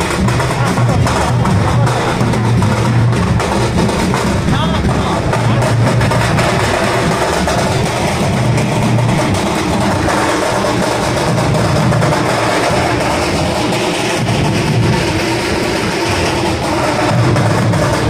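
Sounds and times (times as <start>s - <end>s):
loud bass-heavy procession music: 0.0s - 18.0s.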